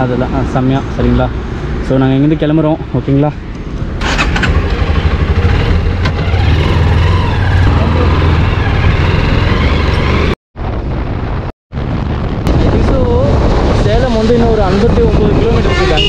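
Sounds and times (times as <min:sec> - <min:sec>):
road noise: 0:00.0 - 0:16.0
motorcycle engine hum: 0:03.3 - 0:16.0.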